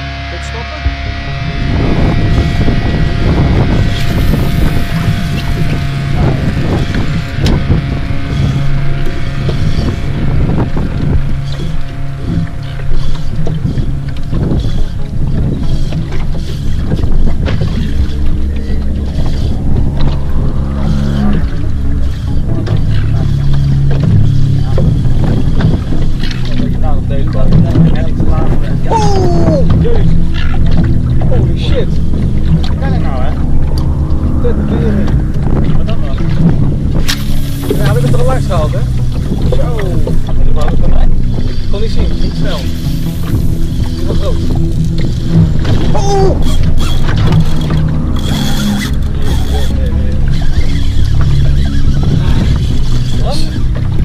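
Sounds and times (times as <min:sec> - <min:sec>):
boat engine running: 0:00.0 - 0:54.0
wind buffeting microphone: 0:00.0 - 0:54.0.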